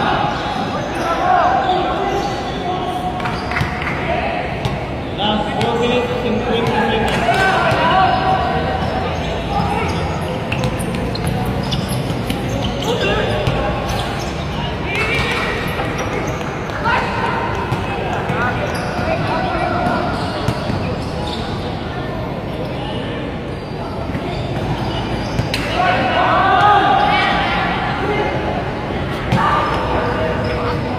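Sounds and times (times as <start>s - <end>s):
people calling out and talking: 0.0s - 30.9s.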